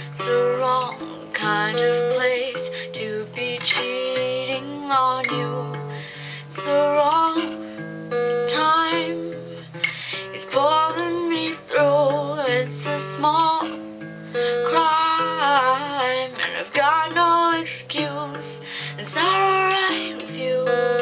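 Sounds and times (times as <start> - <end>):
acoustic guitar chords: 0.0 - 21.0
woman singing: 0.0 - 21.0.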